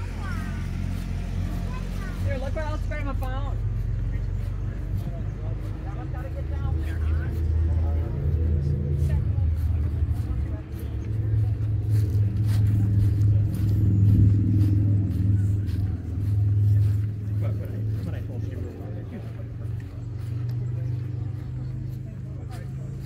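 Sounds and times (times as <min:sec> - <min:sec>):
background voices: 0:00.0 - 0:23.0
vehicle engine humming: 0:00.0 - 0:23.0.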